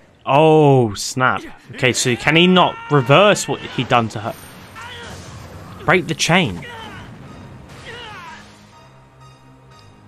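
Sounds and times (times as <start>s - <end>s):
high falling cry: 1.8s - 5.8s, 6.5s - 8.6s
low background music: 6.2s - 10.0s.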